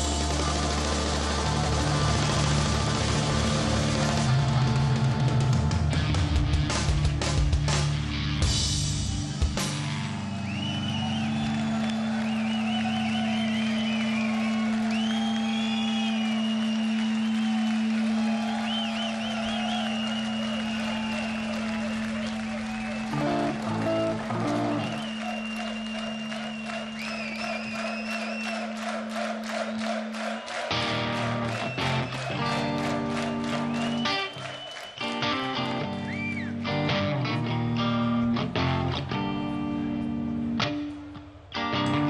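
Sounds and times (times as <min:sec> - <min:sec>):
crowd clapping: 0:00.0 - 0:05.8, 0:09.8 - 0:41.0
crowd cheering and whistling: 0:00.0 - 0:06.2, 0:09.0 - 0:41.0
rock band playing: 0:00.0 - 0:10.5, 0:20.4 - 0:26.9, 0:30.6 - 0:42.0.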